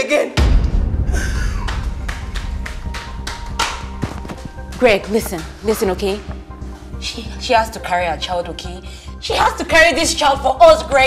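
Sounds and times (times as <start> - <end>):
low background music: 0.4 - 11.0.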